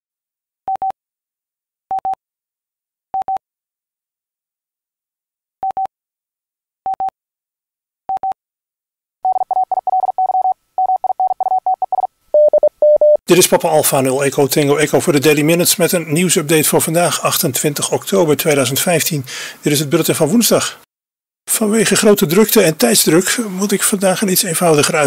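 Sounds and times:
morse code beeps: 9.2s - 13.2s.

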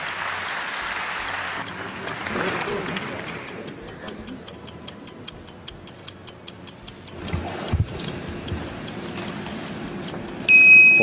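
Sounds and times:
fast clock ticking: 0.0s - 11.0s.

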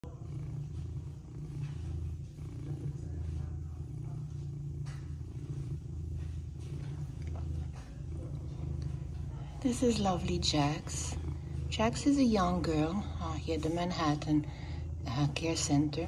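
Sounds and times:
cat purring: 0.0s - 16.0s.

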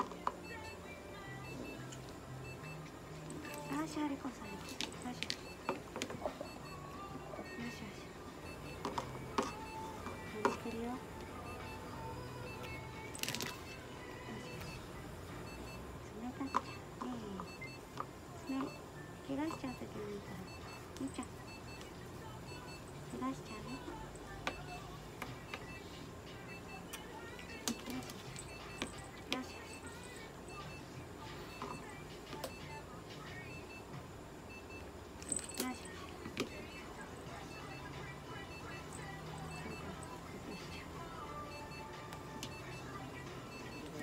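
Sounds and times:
paired electronic beeps: 0.0s - 44.0s.

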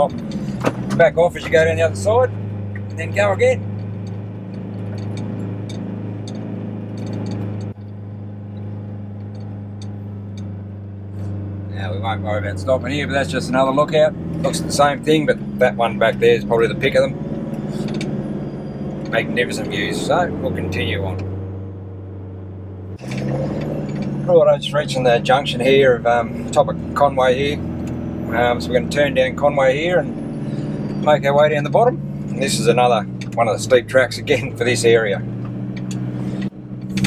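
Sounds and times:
engine running under load: 0.0s - 37.0s.

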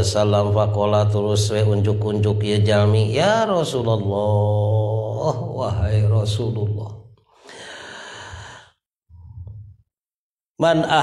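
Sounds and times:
man breathing into microphone: 7.3s - 8.8s.

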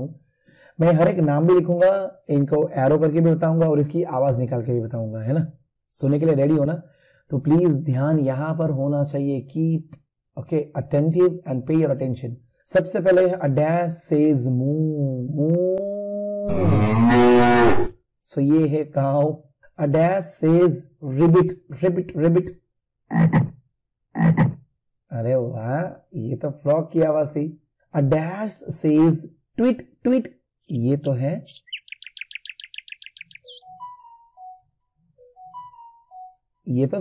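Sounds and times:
cow mooing: 16.5s - 17.9s
bird chirping: 31.4s - 36.5s.

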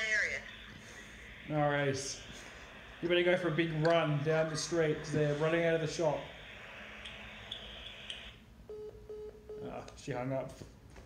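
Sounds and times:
phone line hiss: 0.0s - 9.3s.

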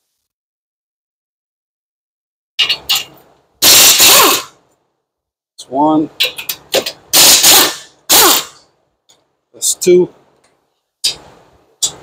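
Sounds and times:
air wrench spinning bolt: 2.6s - 4.5s, 7.1s - 8.6s.

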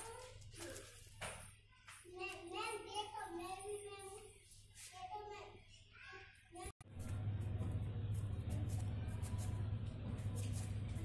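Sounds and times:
low steady hum: 6.9s - 11.0s.

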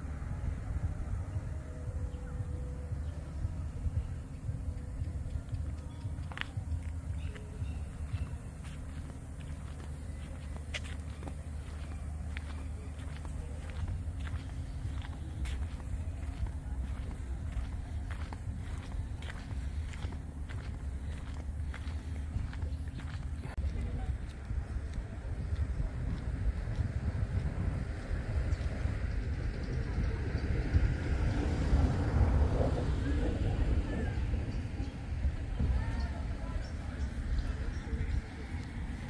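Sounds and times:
murmur of distant voices: 0.0s - 39.0s
steady low rumble: 0.0s - 39.0s
footsteps on paved path: 0.2s - 32.9s, 33.6s - 39.0s.

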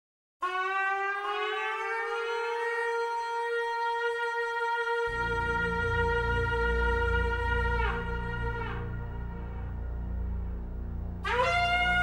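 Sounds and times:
shofar long blast: 0.4s - 10.2s, 11.2s - 12.0s.

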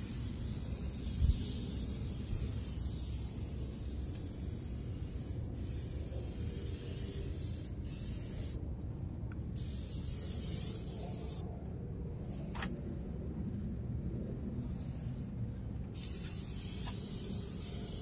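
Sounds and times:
aerosol spray hissing: 0.0s - 8.6s, 9.6s - 11.4s, 16.0s - 18.0s.

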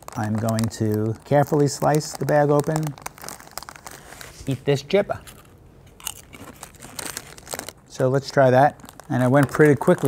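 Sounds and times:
foil bag crinkling: 0.0s - 10.0s
potato chip crunching: 0.0s - 10.0s.

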